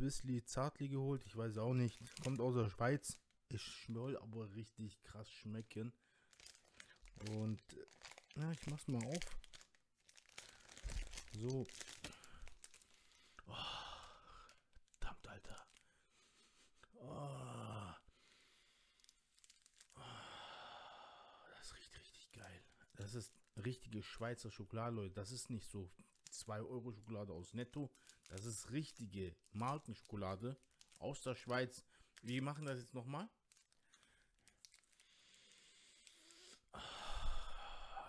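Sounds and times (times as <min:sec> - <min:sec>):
wrapper crinkling: 0:01.4 - 0:04.2, 0:05.5 - 0:13.4, 0:14.0 - 0:15.9, 0:19.0 - 0:20.0, 0:22.3 - 0:24.3, 0:25.3 - 0:36.4.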